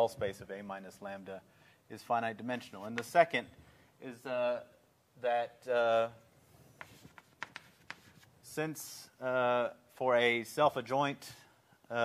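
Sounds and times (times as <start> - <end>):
chalk tapping and scratching: 2.7 - 3.2, 6.6 - 8.3.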